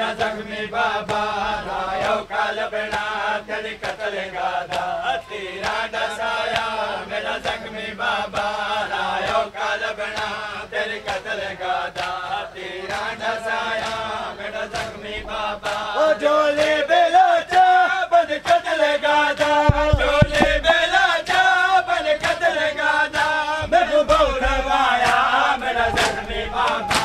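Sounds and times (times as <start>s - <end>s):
men chanting in unison: 0.0s - 27.0s
open-hand chest slaps: 19.4s - 21.4s.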